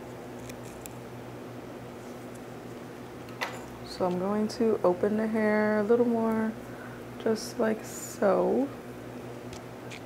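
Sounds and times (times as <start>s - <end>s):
electric fan humming: 0.0s - 10.0s.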